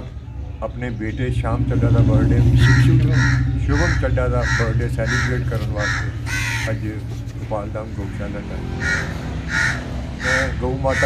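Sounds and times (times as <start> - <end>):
steady low hum: 0.0 - 11.0
bird giving harsh calls: 2.4 - 11.0.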